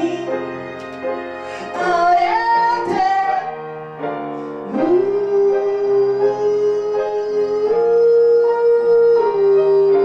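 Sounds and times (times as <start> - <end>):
electric keyboard: 0.0 - 10.0.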